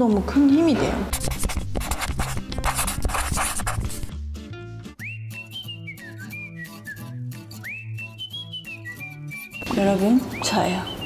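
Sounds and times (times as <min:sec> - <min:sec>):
pen scribbling on paper: 0:01.1 - 0:04.1.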